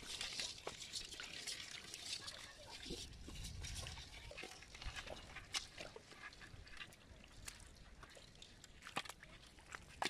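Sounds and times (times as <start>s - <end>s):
small wet clicks and pops: 0.0s - 10.0s.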